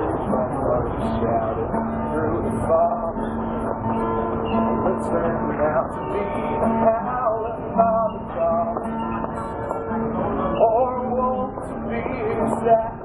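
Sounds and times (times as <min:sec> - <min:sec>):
man singing: 0:00.0 - 0:03.6, 0:04.6 - 0:09.1, 0:10.2 - 0:13.0
strummed acoustic guitar: 0:00.0 - 0:13.0.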